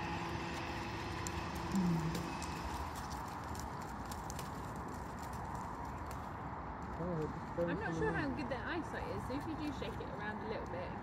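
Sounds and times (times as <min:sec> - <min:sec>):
hooves on gravel and mud: 0:00.0 - 0:11.0.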